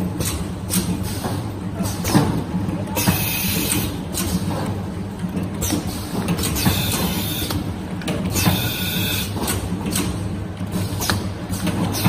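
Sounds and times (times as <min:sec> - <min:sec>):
motor and conveyor hum: 0:00.0 - 0:12.0.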